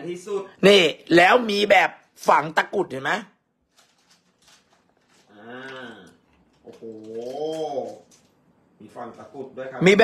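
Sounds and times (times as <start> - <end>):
speech: 8.8 - 10.0.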